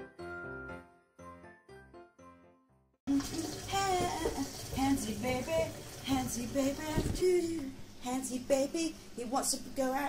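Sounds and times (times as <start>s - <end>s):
water running from tap: 3.1s - 7.6s
woman singing: 3.1s - 10.0s
woman speaking: 9.2s - 10.0s.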